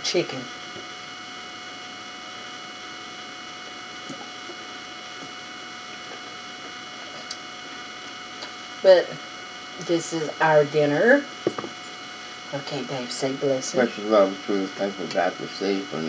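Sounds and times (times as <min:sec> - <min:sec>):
electrical hum and hiss: 0:00.0 - 0:16.0
thin constant tones: 0:00.0 - 0:16.0.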